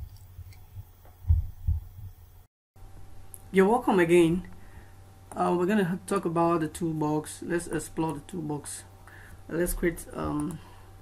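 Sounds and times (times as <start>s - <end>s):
dull low thumps: 0.6s - 2.4s.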